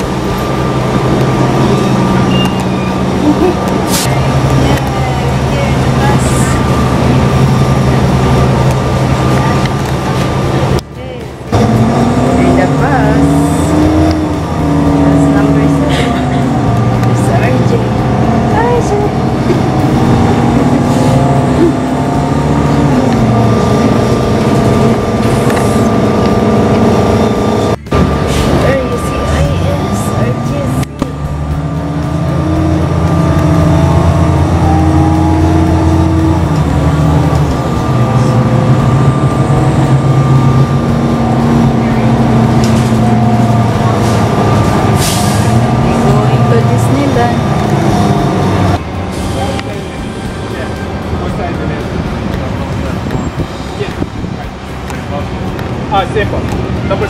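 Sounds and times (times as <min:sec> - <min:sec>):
bus engine running: 0:00.0 - 0:57.0
road noise: 0:00.0 - 0:57.0.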